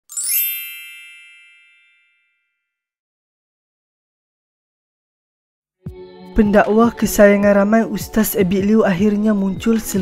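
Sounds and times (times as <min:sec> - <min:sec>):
bright upward-sweeping chime: 0:00.0 - 0:02.5.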